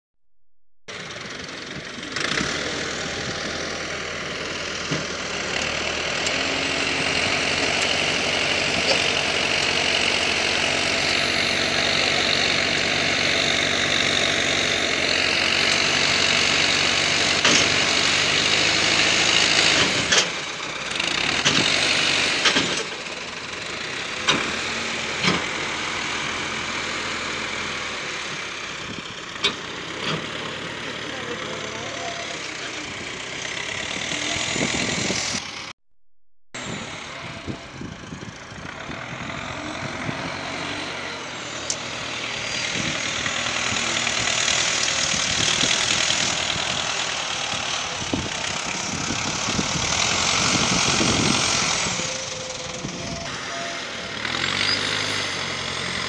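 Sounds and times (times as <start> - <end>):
tractor diesel engine under load: 0.9 - 35.8, 36.6 - 56.0.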